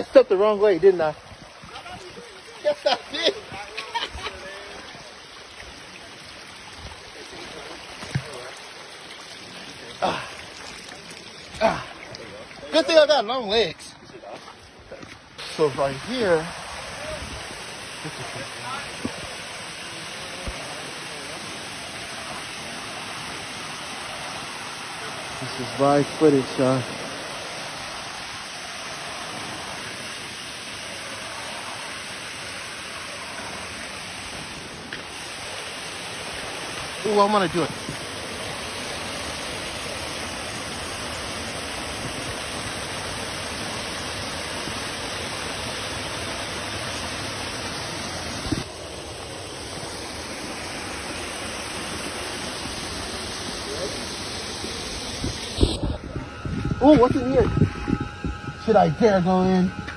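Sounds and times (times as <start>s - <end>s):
small waterfall rushing: 0.0s - 57.5s.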